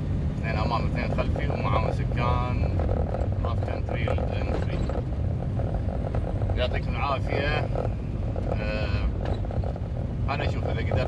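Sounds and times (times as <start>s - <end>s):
car engine drone: 0.0s - 11.0s
road noise inside cabin: 0.0s - 11.0s
man talking: 0.4s - 2.7s, 3.4s - 4.9s, 6.6s - 7.7s, 8.5s - 9.2s, 10.3s - 11.0s.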